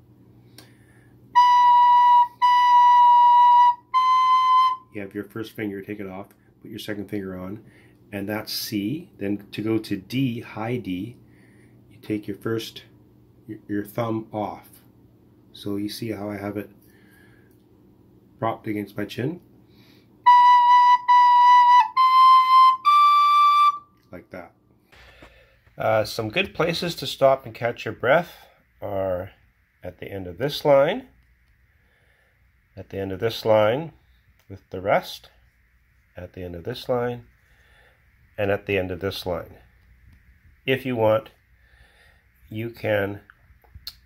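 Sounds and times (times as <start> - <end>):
recorder held notes: 0.6 - 5.1, 20.2 - 24.2.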